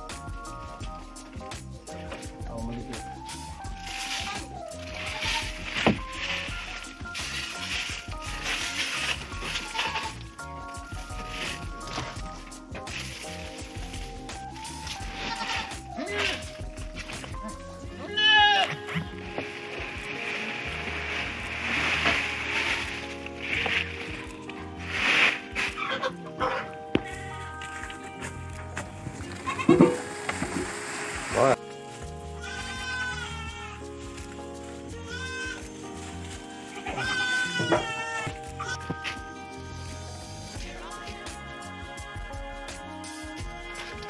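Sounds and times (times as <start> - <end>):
background music: 0.0 - 44.0
leaves rustling in plastic bag: 3.7 - 10.4, 18.9 - 26.2, 29.0 - 38.7
goat bleating: 4.0 - 6.8, 8.3 - 10.4, 15.0 - 20.5, 23.9 - 24.7, 25.8 - 26.8, 29.4 - 30.0, 31.6 - 34.2, 34.8 - 35.8, 36.5 - 39.0.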